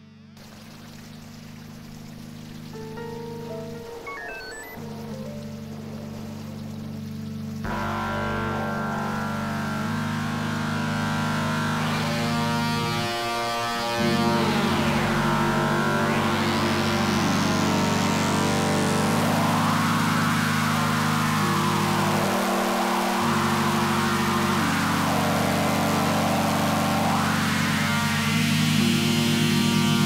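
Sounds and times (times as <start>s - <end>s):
hissing filter sweep: 0.4s - 30.0s
low synth chords: 1.2s - 30.0s
electronic synth music: 2.7s - 30.0s.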